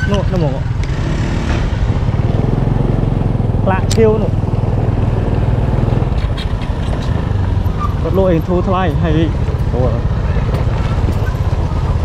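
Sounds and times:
scooter engine running: 0.0s - 12.0s.

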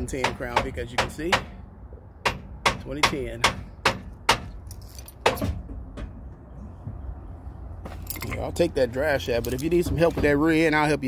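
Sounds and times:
hammer striking metal: 2.2s - 4.6s.

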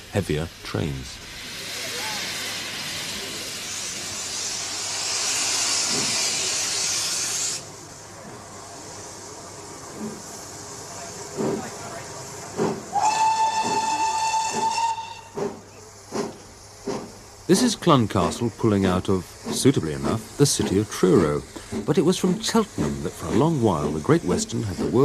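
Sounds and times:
steam hissing: 0.0s - 25.0s
locomotive exhaust chuffs: 1.2s - 25.0s
steam whistle: 12.9s - 15.4s.

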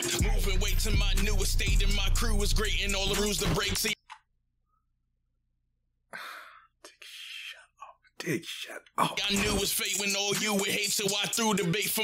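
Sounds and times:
man's breathy exhale: 6.1s - 6.7s.

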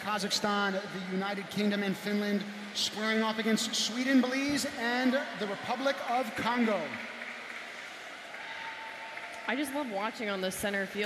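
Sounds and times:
arena crowd background noise: 0.0s - 11.0s.

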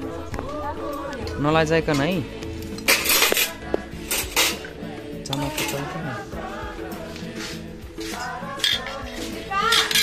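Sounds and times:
background music: 0.0s - 10.0s
metal spoons clinking on pots: 2.8s - 3.5s, 5.3s - 6.0s, 8.6s - 10.0s.

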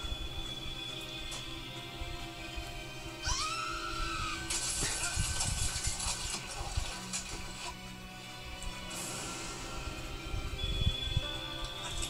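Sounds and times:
trailer music: 0.0s - 12.0s
woman screaming: 3.2s - 4.5s
harsh hissing noise: 8.9s - 11.4s.

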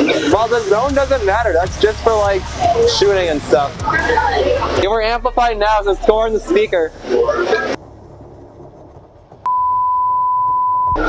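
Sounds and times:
burst of voices and noise: 0.0s - 7.8s
electronic bleep tone: 9.4s - 11.0s.

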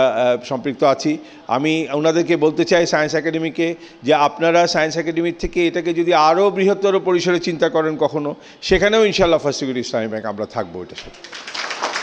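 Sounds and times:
man speaking into a microphone: 0.0s - 11.2s
scattered applause: 10.9s - 12.0s.

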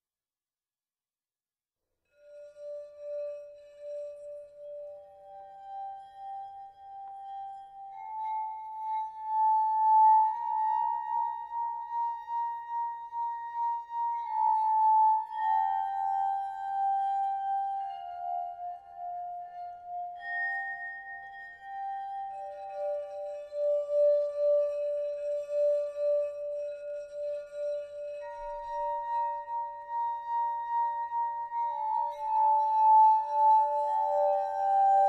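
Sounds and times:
crystal singing bowls ringing: 14.2s - 35.0s.

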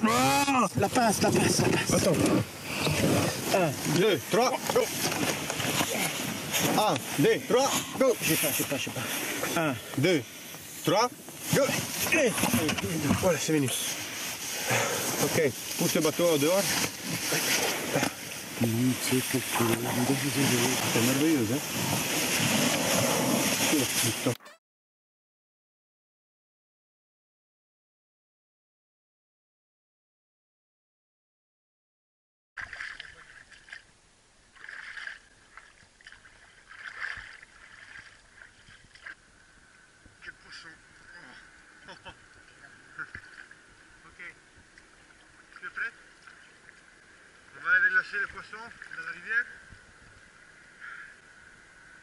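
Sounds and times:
water splashing and rustling: 0.0s - 24.4s, 32.6s - 52.0s
water sloshing and splashing: 32.6s - 39.2s, 42.4s - 43.8s, 44.6s - 49.3s.

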